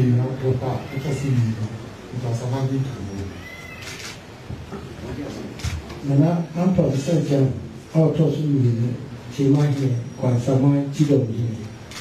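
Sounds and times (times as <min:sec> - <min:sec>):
man speaking into a microphone: 0:00.0 - 0:03.4, 0:05.1 - 0:11.8.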